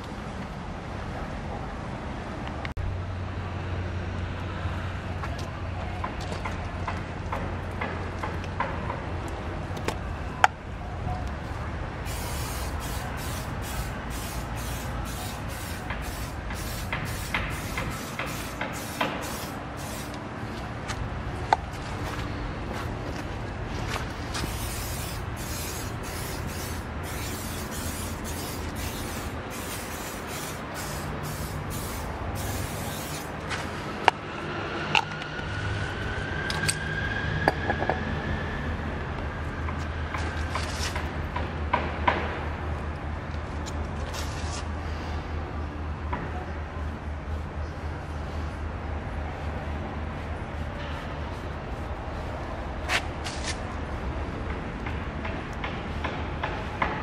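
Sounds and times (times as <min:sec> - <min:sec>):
steady low rumble: 0:08.9 - 0:34.6
aerosol spray hissing bursts: 0:12.0 - 0:20.2, 0:24.4 - 0:33.3.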